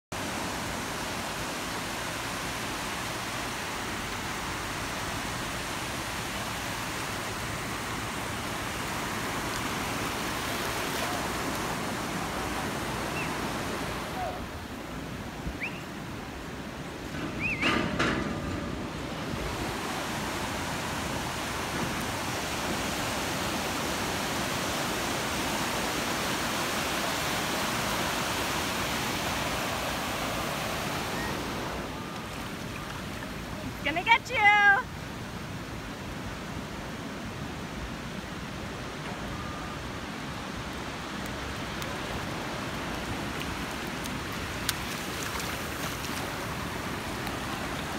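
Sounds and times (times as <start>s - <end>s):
surf washing over sand: 0.2s - 47.9s.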